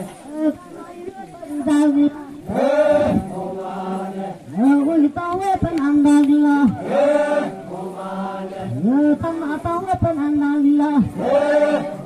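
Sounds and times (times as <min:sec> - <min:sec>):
voices chanting: 0:00.0 - 0:12.0.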